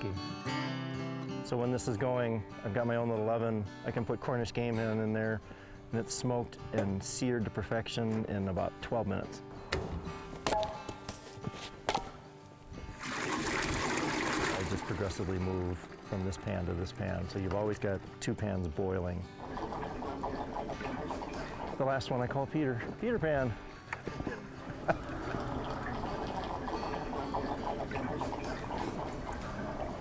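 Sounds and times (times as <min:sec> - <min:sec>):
soft guitar music: 0:00.0 - 0:30.0
liquid pouring into metal pan: 0:12.9 - 0:18.0, 0:19.2 - 0:22.3, 0:24.8 - 0:30.0.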